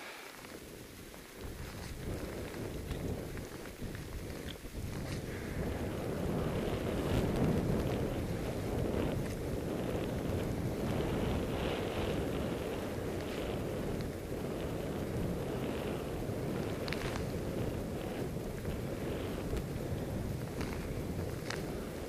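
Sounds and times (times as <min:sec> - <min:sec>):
wind rushing over microphone: 0:00.0 - 0:22.0.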